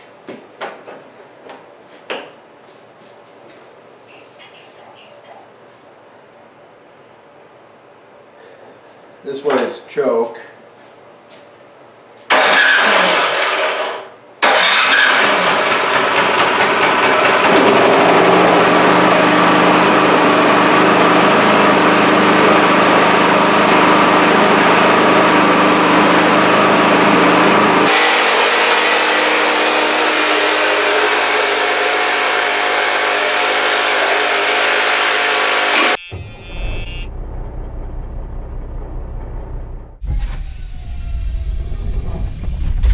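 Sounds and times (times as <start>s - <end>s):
snowblower engine running: 12.3s - 42.3s.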